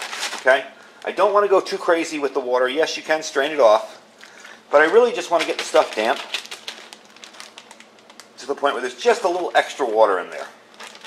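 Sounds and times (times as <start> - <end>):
thin plastic crinkling: 0.0 - 1.2, 4.8 - 8.6, 10.3 - 11.0
water pouring into bag: 5.3 - 8.2, 10.7 - 11.0.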